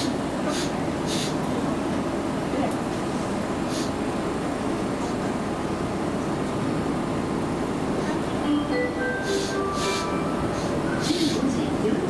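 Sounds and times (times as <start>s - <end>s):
train hum and hiss: 0.0s - 12.0s
electronic chime melody: 8.5s - 11.0s.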